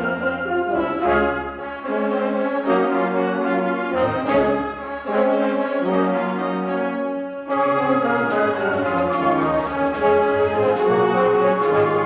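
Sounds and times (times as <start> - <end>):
brass chord: 0.0 - 12.0
concert band playing: 7.5 - 12.0.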